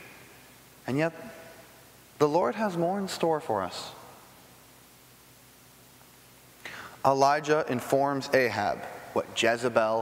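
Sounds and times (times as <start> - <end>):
faint hum: 0.0 - 10.0
low hiss: 0.0 - 10.0
person speaking: 0.8 - 4.1
breathy intake of breath: 6.6 - 7.0.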